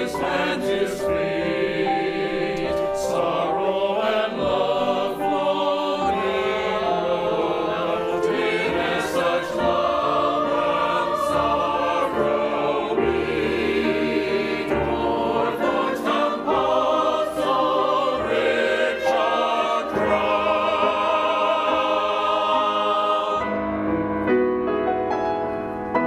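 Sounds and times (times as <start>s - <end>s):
mixed choir singing: 0.0s - 23.7s.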